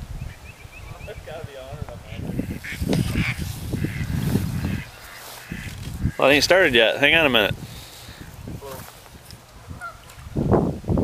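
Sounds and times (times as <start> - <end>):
geese honking in flight: 2.3 - 6.4, 9.7 - 10.1.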